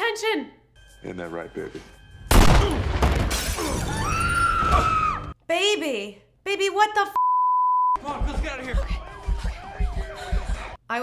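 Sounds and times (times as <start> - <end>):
glass shattering crash: 2.3 - 4.1.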